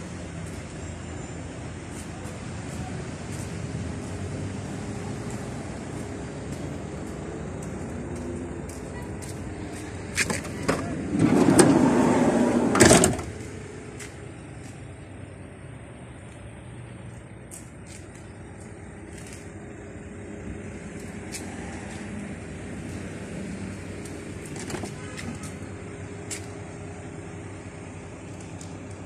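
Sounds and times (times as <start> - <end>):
outdoor background: 0.0 - 29.0
sliding door rolling on track: 10.7 - 13.3.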